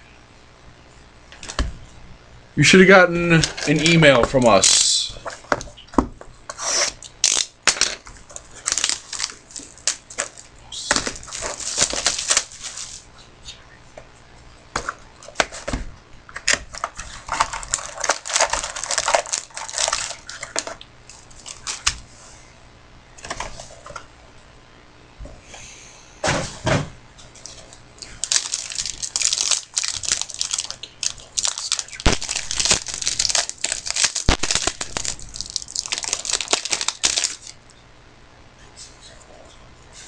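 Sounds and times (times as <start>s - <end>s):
plastic wrapper tearing and crinkling: 6.6s - 13.1s, 16.4s - 21.9s, 27.4s - 37.6s.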